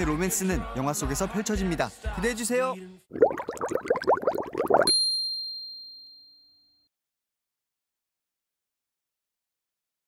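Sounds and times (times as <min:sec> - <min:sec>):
bright ding: 0:04.9 - 0:06.8.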